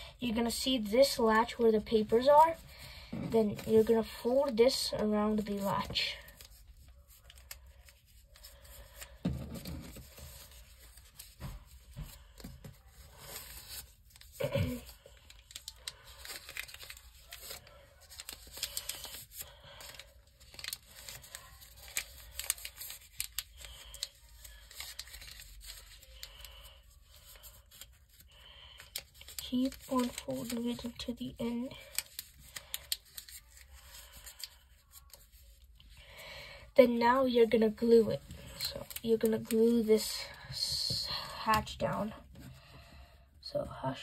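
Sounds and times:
paper rustling and crinkling: 0.3s - 36.2s, 37.5s - 42.6s.

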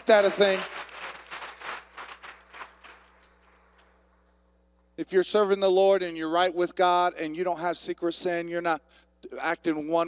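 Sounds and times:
congregation applause: 0.0s - 3.8s.

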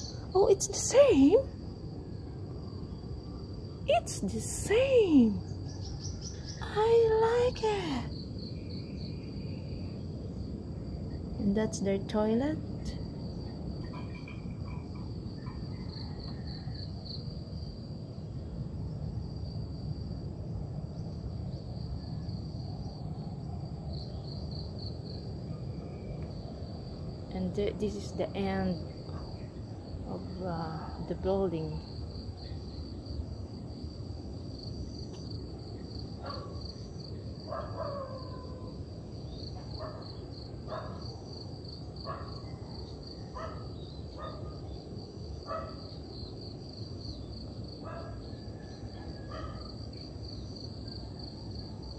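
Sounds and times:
low background rumble: 0.0s - 48.7s
insects trilling: 0.0s - 51.9s.

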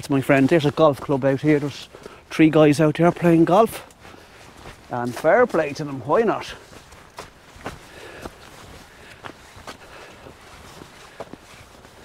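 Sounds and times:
footsteps on outdoor path: 0.0s - 12.0s.

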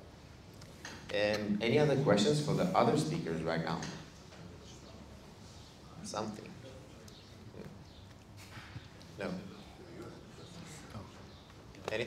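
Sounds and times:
faint audience murmuring: 1.4s - 12.0s.

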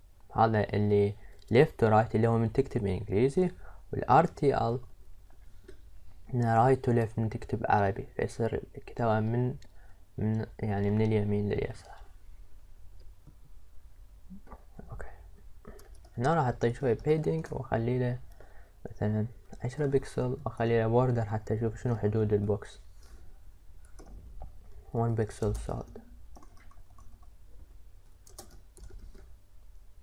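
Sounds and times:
low steady hum: 0.0s - 30.0s
breaths close to microphone: 3.6s - 3.9s, 9.7s - 10.2s, 18.3s - 18.8s.

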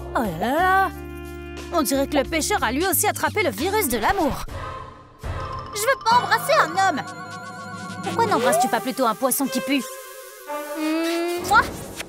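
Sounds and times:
comic buzzing sound effect: 7.0s - 12.0s.

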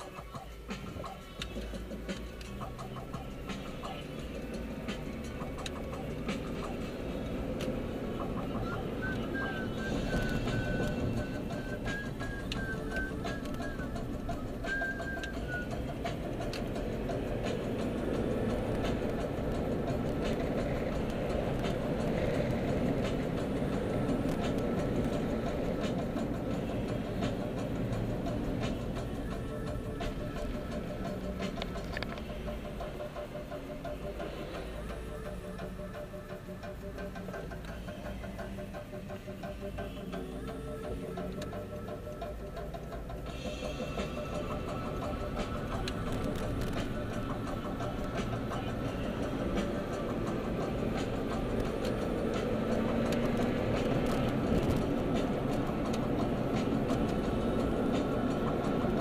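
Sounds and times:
engine and road noise: 0.0s - 59.0s
music playing in car: 0.0s - 59.0s.

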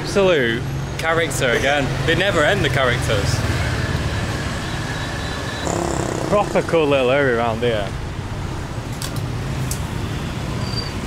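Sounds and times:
motorbike engines rumbling: 0.0s - 11.0s.

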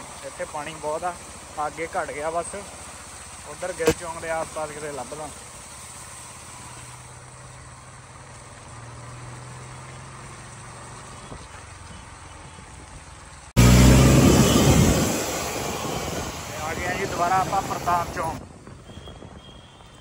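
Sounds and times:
vehicle engine humming: 0.0s - 18.8s
water rushing with low rumble: 0.0s - 18.8s.

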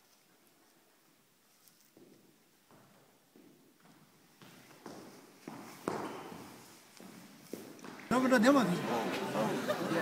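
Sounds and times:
feet stamping on hard floor: 2.7s - 8.1s.

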